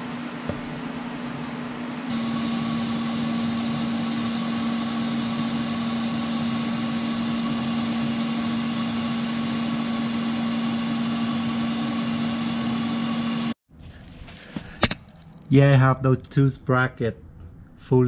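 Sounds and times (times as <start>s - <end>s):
welding arc humming and hissing: 2.1s - 13.6s.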